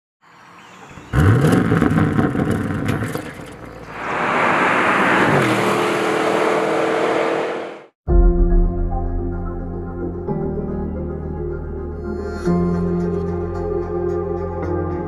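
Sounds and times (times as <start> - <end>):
car engine revving with crackles: 0.9 - 7.9
car passing at speed: 3.8 - 7.9.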